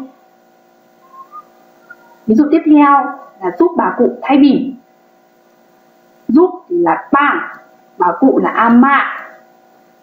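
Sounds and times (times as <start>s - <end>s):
faint steady hum: 0.0s - 10.0s
faint whistle-like tones: 1.0s - 2.3s.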